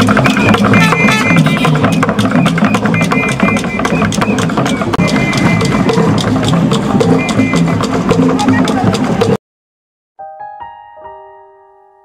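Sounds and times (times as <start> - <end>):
drum-led music: 0.0 - 9.4.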